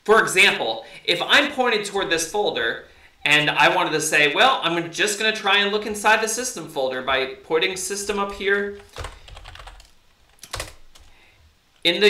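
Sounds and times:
keyboard key press: 8.2s - 11.1s.

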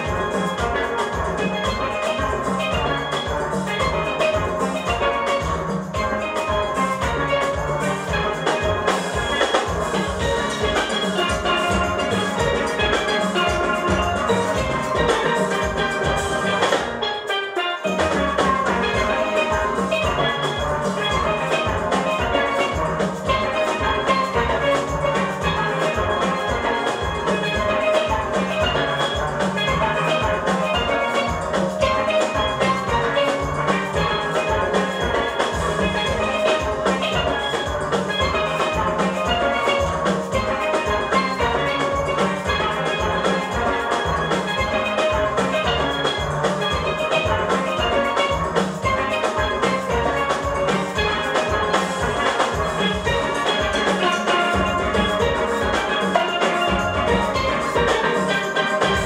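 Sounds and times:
drum kit beat: 0.0s - 59.0s
steelpans ringing melody: 0.0s - 59.0s.

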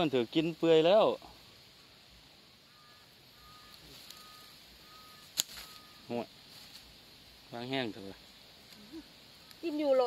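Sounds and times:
two-pitched bird call: 2.6s - 6.2s
sharp click: 5.2s - 5.8s.

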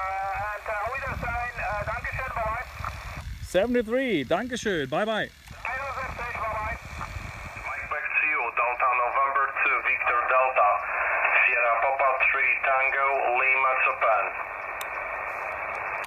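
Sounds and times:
thin radio voice: 0.0s - 3.2s, 4.2s - 16.0s
receiver hiss: 0.0s - 16.0s.

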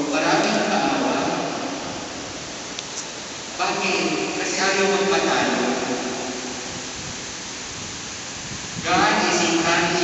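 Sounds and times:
man's voice echoing: 0.0s - 2.2s, 3.6s - 6.7s, 8.8s - 10.0s
background hiss in echoing church: 0.0s - 10.0s.

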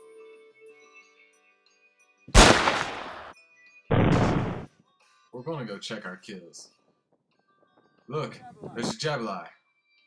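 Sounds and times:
gunshot: 2.3s - 4.7s
loud burst: 2.4s - 3.3s, 3.9s - 4.7s.

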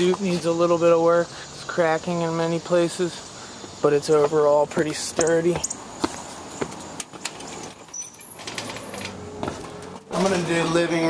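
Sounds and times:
high-pitched door squeak: 7.7s - 9.2s.

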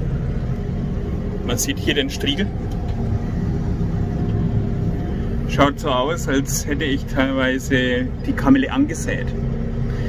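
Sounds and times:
tractor engine drone: 0.0s - 10.0s.

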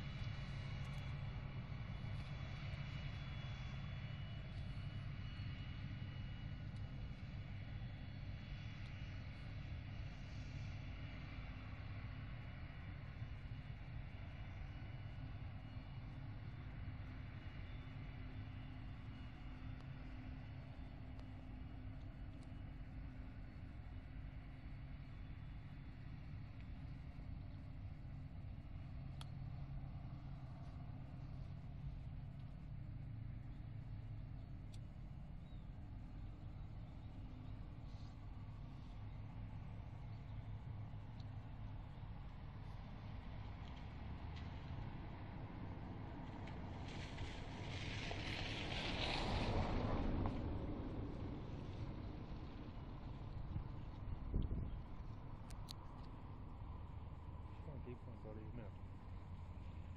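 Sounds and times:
harvester engine drone: 0.0s - 59.9s.

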